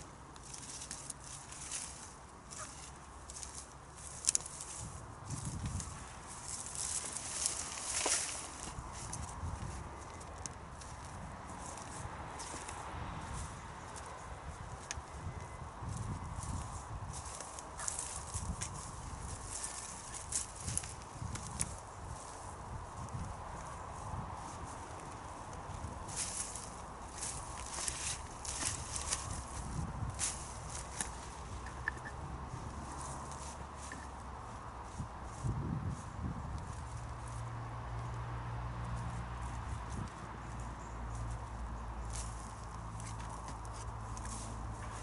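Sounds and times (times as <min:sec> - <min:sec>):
plant stems crackling and rustling: 0:00.0 - 0:38.1, 0:39.0 - 0:45.0.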